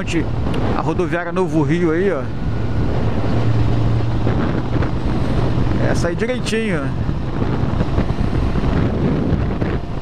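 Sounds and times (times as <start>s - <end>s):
motorcycle engine running steadily: 0.0s - 10.0s
wind rushing on microphone: 0.0s - 10.0s.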